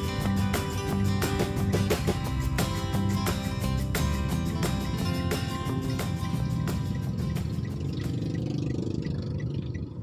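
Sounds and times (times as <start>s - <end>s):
car engine rumble: 0.0s - 10.0s
light regular ticking: 0.0s - 10.0s.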